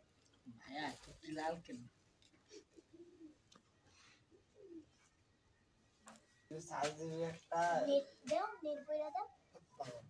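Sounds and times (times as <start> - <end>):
pigeon cooing: 2.5 - 3.4, 4.3 - 5.0.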